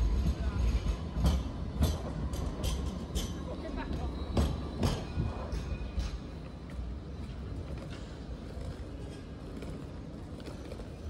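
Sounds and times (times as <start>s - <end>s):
tram passing rumble: 0.0s - 11.0s.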